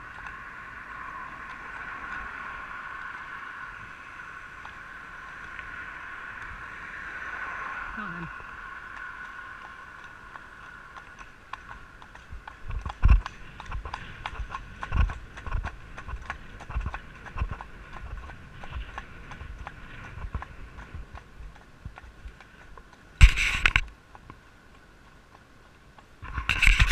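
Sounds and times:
horse hooves on pavement: 0.0s - 6.8s, 8.0s - 26.9s.

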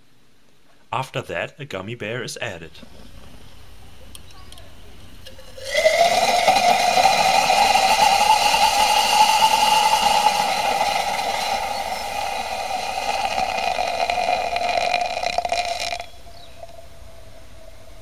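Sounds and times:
rushing gas and flame: 5.2s - 16.5s.

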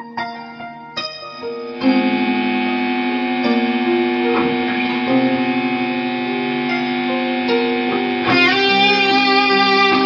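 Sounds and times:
electric guitar notes: 0.0s - 10.0s.

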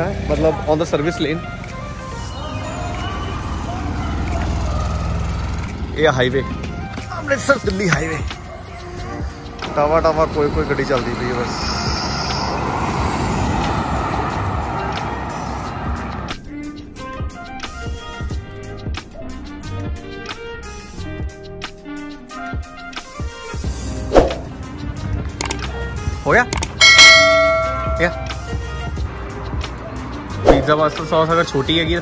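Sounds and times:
highway traffic rush: 0.0s - 32.0s
notification bell ding: 26.6s - 28.4s.

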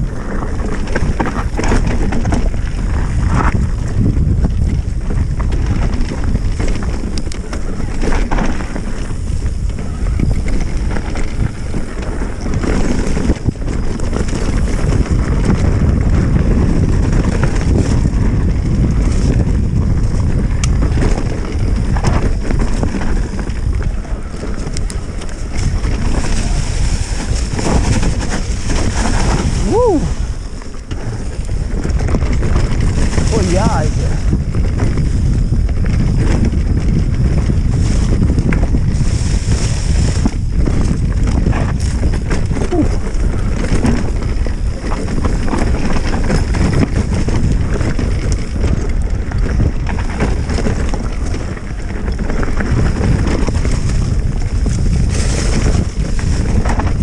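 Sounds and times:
tyres rolling over dirt: 0.0s - 57.0s
wind buffeting microphone: 0.0s - 57.0s.

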